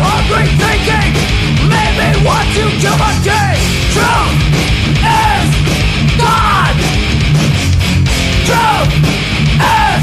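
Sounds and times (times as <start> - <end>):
shouted vocals: 0.0 - 6.8, 8.4 - 10.0
bass guitar: 0.0 - 10.0
distorted electric guitars: 0.0 - 10.0
drums: 0.0 - 10.0.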